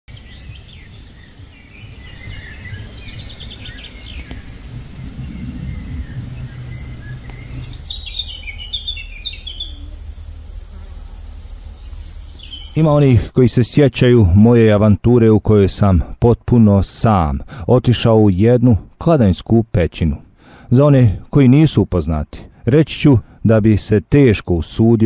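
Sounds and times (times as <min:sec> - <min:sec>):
bird trill: 0:00.1 - 0:13.2
chirping calls: 0:00.1 - 0:13.3
songbirds singing: 0:00.1 - 0:15.7
steady low rumble: 0:00.8 - 0:14.4.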